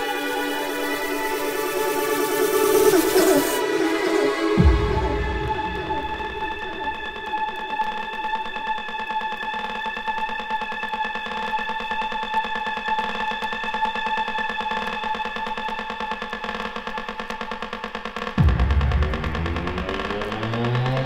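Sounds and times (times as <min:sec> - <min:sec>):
pulsing synthesizer chord: 0:00.0 - 0:07.8, 0:18.4 - 0:21.0.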